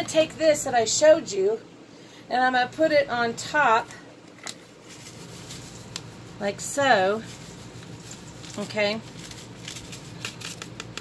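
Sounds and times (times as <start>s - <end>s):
seasoning packet rustling: 4.6s - 6.4s, 7.1s - 11.0s.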